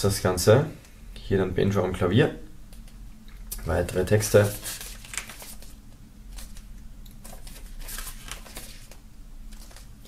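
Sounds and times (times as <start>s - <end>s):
paper booklet pages turning: 3.8s - 9.9s.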